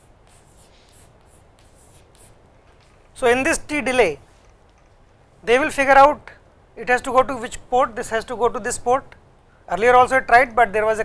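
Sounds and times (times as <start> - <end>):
chalk scratching on blackboard: 0.0 - 2.4.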